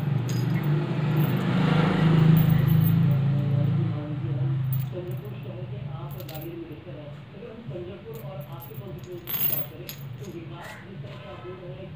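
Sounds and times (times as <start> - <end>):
metal pins clinking: 0.0 - 3.7, 4.6 - 6.6, 8.1 - 10.4.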